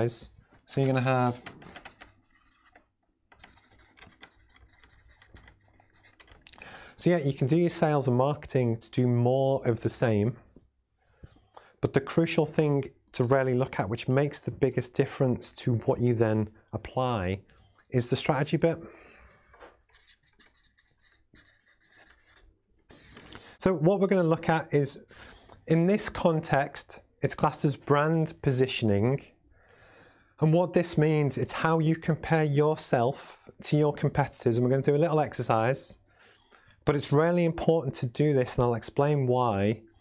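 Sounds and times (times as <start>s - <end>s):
marker scratching on paper: 1.2s - 6.4s, 19.9s - 23.5s.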